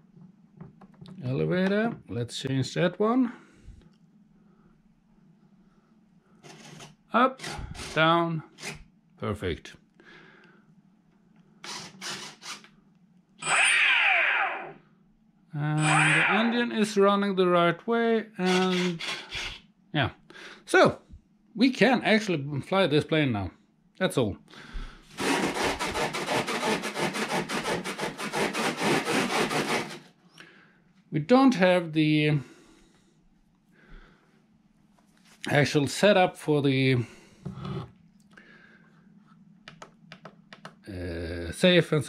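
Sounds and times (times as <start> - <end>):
electric motor whine: 13.4 - 14.7
rapid rasping noise: 15.8 - 16.7, 25.2 - 30.0.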